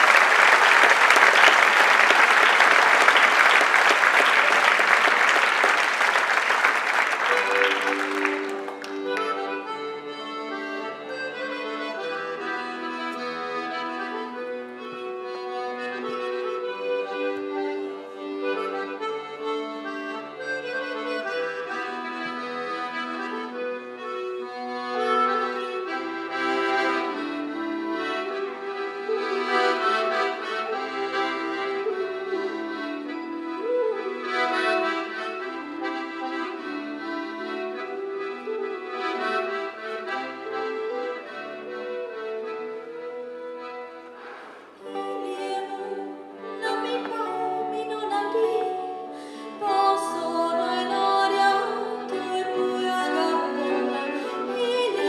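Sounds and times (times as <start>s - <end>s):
button accordion folk melody: 0.0s - 55.0s.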